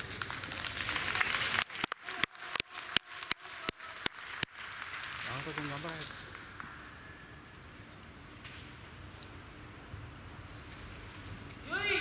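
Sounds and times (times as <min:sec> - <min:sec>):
spectators clapping: 0:00.0 - 0:07.2.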